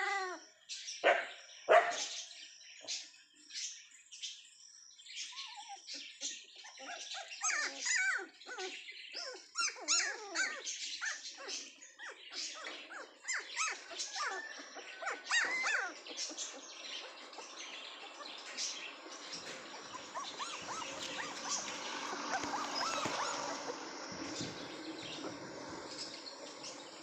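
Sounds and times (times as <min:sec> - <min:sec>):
puppies whining and yelping: 0:00.0 - 0:00.4, 0:05.2 - 0:27.0.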